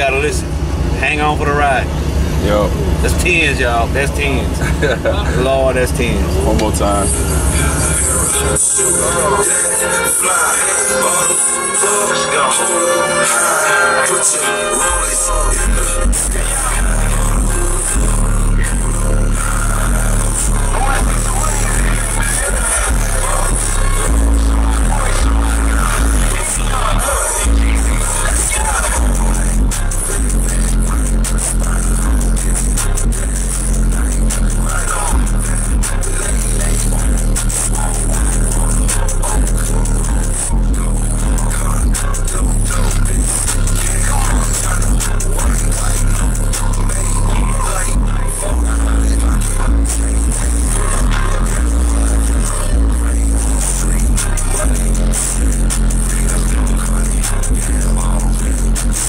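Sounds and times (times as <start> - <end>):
bass-heavy music through car subwoofers: 0.0 - 59.0.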